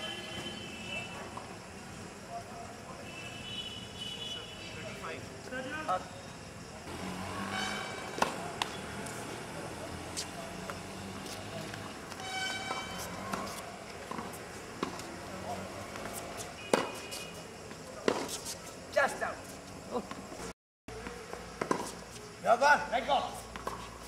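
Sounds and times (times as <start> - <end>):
tennis ball struck by rackets: 8.0 - 9.2, 12.1 - 15.1, 15.9 - 17.1, 18.0 - 18.5
tennis ball bouncing on hard court: 8.1 - 8.8, 11.2 - 15.2, 15.9 - 17.1, 18.0 - 18.6, 21.6 - 21.9, 23.5 - 23.9.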